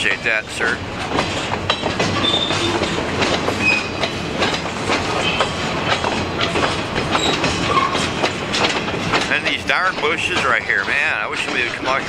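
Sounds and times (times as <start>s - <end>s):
train wheels clattering over rail joints: 0.0s - 12.0s
high metallic wheel squeals: 2.2s - 2.9s, 3.6s - 4.1s, 7.2s - 8.1s.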